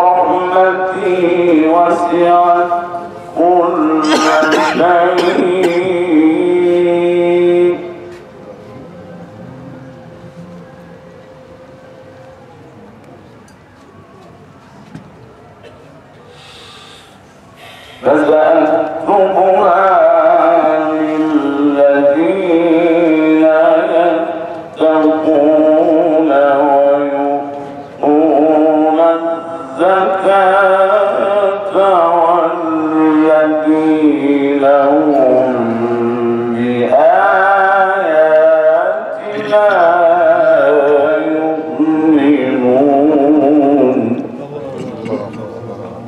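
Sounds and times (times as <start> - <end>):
man reciting melodically: 0.0 - 8.3, 17.7 - 45.7
man breathing in near microphone: 16.3 - 18.1.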